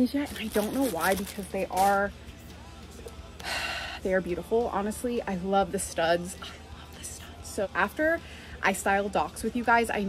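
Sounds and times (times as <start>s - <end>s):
woman talking: 0.0s - 2.1s, 4.0s - 10.0s.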